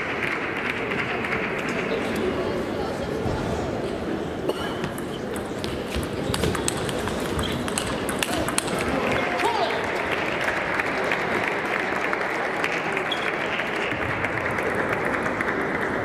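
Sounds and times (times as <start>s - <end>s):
table tennis ball clicking: 5.4s - 8.9s
spectators applauding: 8.0s - 16.0s.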